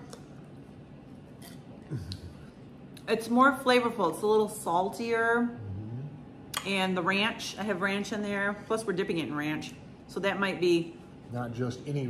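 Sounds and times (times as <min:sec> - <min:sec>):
person humming mm: 0:01.9 - 0:02.4, 0:05.6 - 0:06.2.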